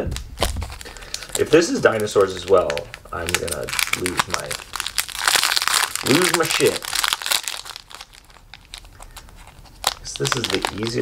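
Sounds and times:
foil wrapper crinkling and tearing: 0:00.1 - 0:11.0.

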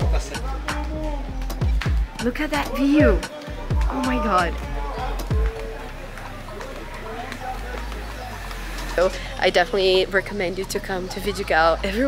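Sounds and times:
footsteps on street: 0:01.6 - 0:12.0
faint voices: 0:02.1 - 0:12.0.

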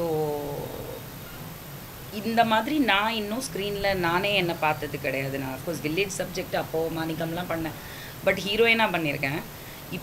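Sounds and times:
woman humming: 0:00.0 - 0:01.1.

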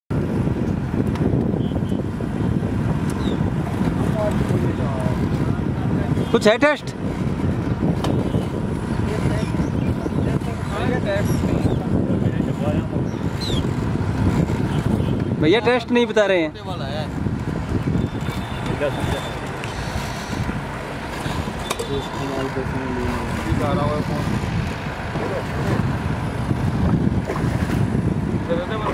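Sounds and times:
open-water ambience: 0:00.1 - 0:28.9
wind buffeting microphone: 0:00.1 - 0:28.9.

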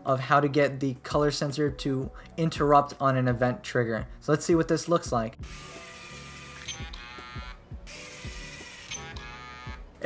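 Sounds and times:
toy robot motor gear whir: 0:05.4 - 0:09.7.

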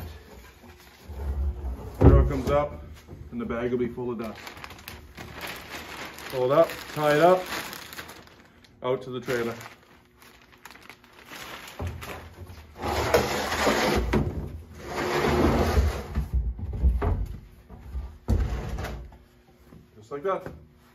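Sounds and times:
plastic barrel scraping on floor: 0:00.0 - 0:02.7, 0:11.8 - 0:16.4, 0:18.3 - 0:19.1.

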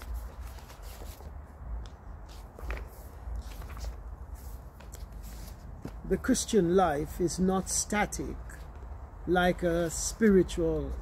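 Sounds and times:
rustling and handling noises: 0:00.0 - 0:06.2.

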